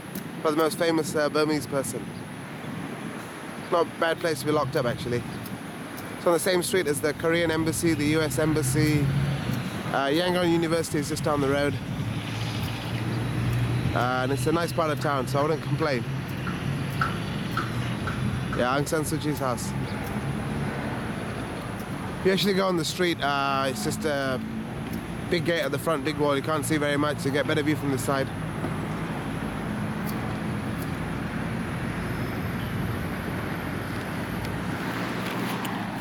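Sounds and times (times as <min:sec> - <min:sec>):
distant traffic hum: 0:00.0 - 0:36.0.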